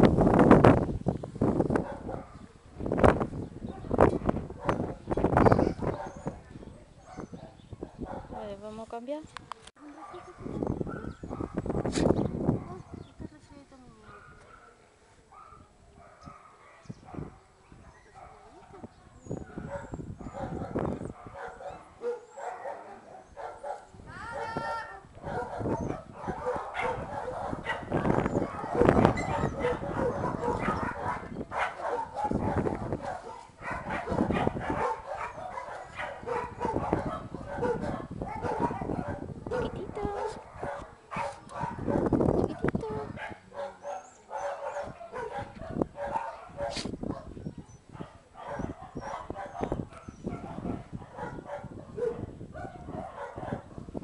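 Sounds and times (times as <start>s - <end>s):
dogs barking: 1.8s - 2.5s, 3.7s - 4.9s, 5.5s - 6.4s, 7.0s - 8.6s, 9.9s - 11.7s, 14.0s - 18.8s, 19.4s - 54.0s.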